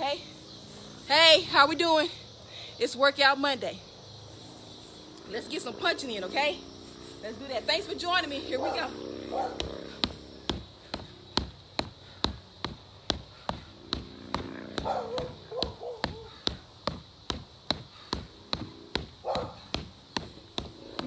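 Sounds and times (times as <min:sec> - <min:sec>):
fists punching a punching bag: 0:09.6 - 0:21.0.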